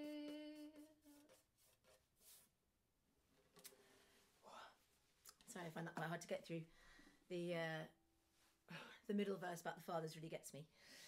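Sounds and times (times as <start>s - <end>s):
faint breath: 6.7s - 7.3s, 10.7s - 11.0s.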